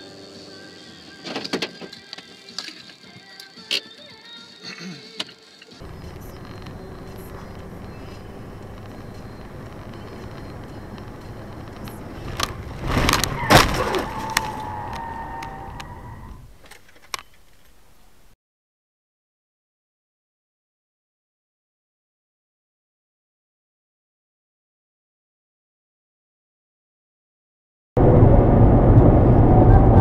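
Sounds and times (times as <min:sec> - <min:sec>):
road and engine noise: 0:00.0 - 0:02.7, 0:05.5 - 0:18.3, 0:28.0 - 0:30.0
steady falling tone: 0:28.0 - 0:30.0.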